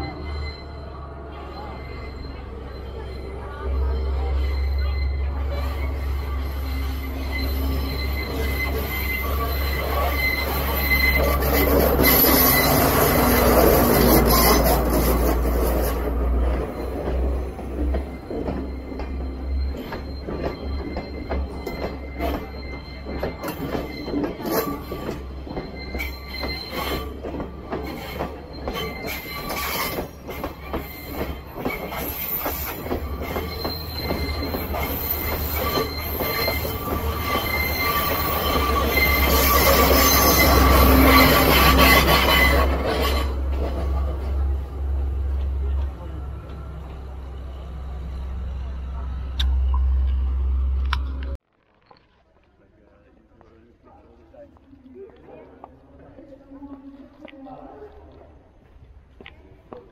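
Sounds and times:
high wheel squeal: 0.0 - 51.3
train wheels clattering over rails: 7.8 - 47.3
diesel train engine humming: 30.0 - 51.4.

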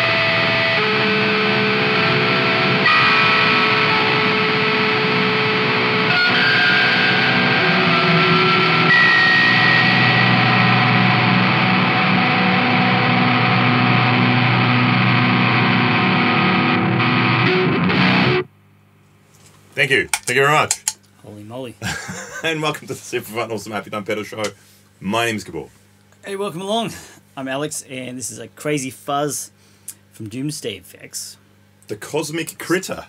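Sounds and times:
fuzzed electric guitar chords: 0.0 - 18.8.

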